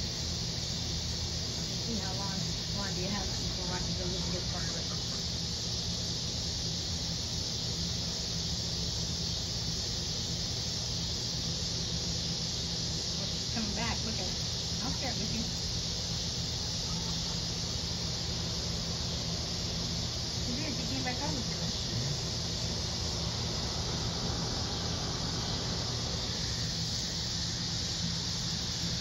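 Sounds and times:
high-pitched insect chorus: 0.0s - 29.0s.

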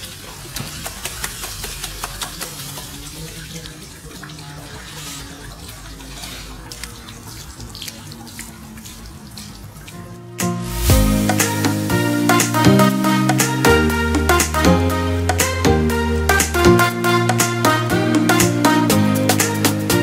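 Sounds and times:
pool water splashing: 0.0s - 20.0s.

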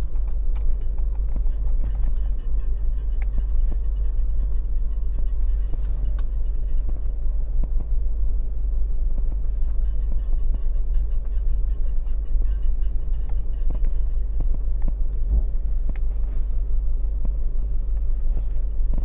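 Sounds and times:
car rolling low rumble: 0.0s - 19.0s.

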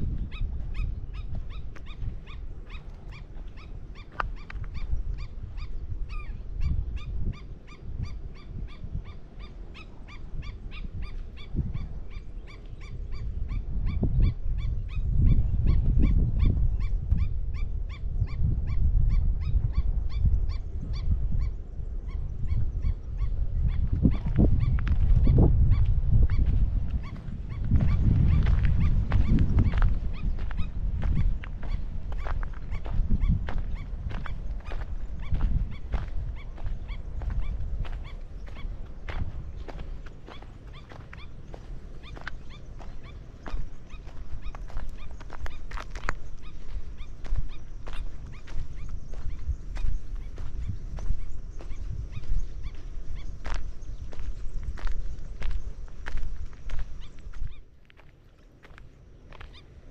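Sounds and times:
footsteps on sandy dirt path: 0.0s - 5.6s, 23.0s - 59.9s
wind rumble on microphone: 0.0s - 59.9s.

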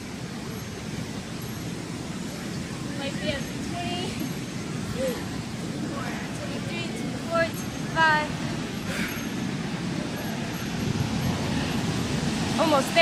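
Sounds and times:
woman speaking: 6.4s - 8.3s, 12.6s - 13.0s.

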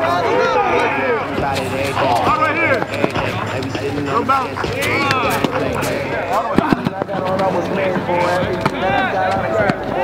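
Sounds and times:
people calling out: 0.0s - 9.7s.

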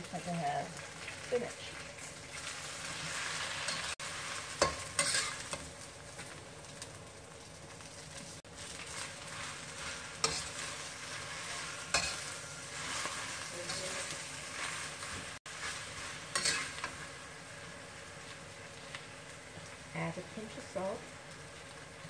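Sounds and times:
spinach sizzling in hot oil: 0.0s - 22.0s
spatula clanking against wok: 4.6s - 5.6s, 11.9s - 12.4s.

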